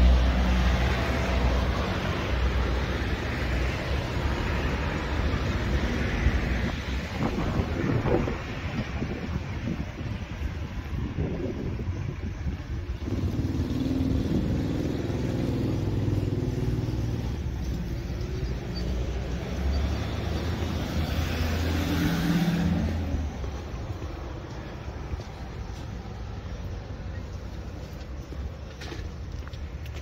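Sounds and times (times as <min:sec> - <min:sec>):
tyre noise on road: 0:00.0 - 0:30.0.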